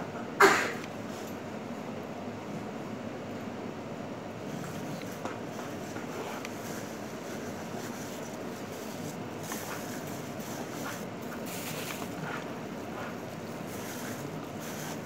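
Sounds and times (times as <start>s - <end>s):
steady background hiss: 0.0s - 15.0s.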